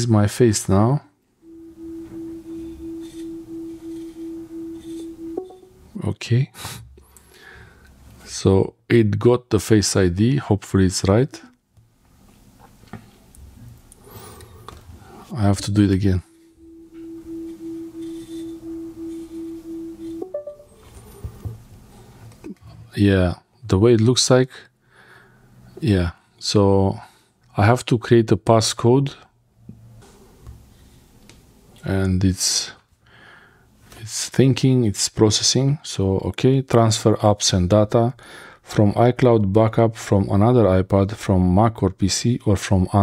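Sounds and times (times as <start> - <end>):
low pulsing tone: 1.4 - 5.8, 15.4 - 20.8
short high chime: 1.5 - 5.8, 15.4 - 21.2.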